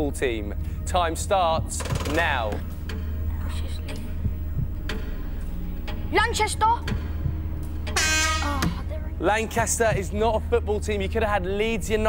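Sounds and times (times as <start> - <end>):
low throbbing hum: 0.4 - 12.0.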